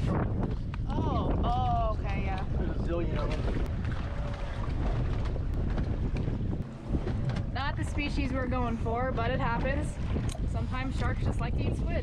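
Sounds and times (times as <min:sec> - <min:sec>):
wind buffeting microphone: 0:00.0 - 0:12.0
people talking: 0:07.6 - 0:12.0.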